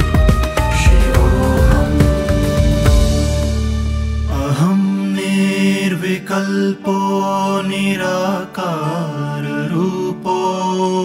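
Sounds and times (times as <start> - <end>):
sustained drone: 0.7 - 4.7
person chanting mantra: 0.8 - 2.6, 4.3 - 11.0.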